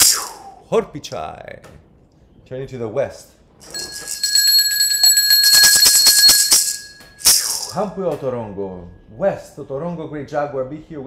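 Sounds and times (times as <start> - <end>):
hand rattle shaking: 3.6 - 7.8
hand bell ringing: 3.6 - 7.9.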